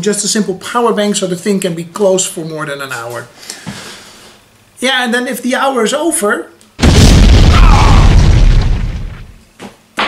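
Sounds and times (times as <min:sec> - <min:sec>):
explosion sound effect through speakers: 0:06.8 - 0:09.4.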